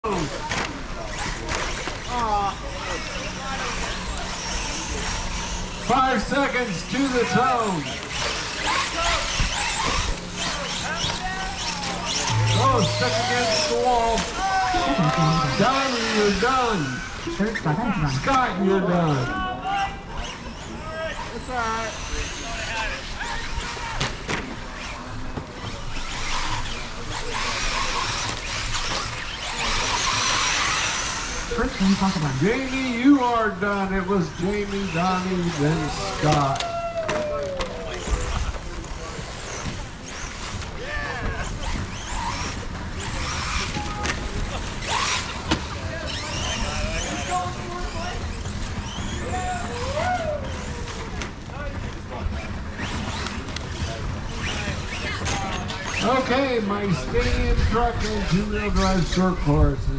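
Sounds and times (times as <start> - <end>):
voices talking: 0.0 - 24.2, 24.8 - 59.9
rc truck motors whining: 0.0 - 59.6
electric motor whine: 1.0 - 19.2.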